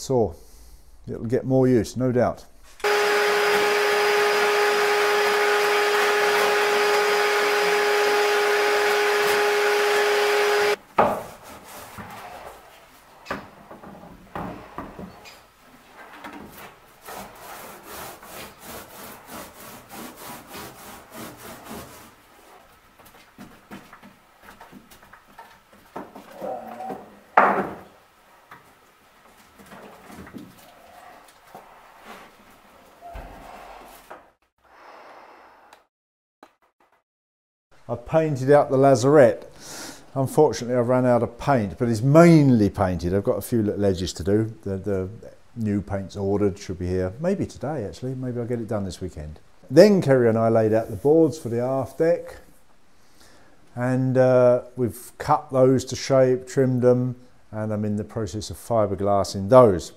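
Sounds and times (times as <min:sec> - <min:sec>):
power tool with vacuum humming: 0:02.8 - 0:10.8.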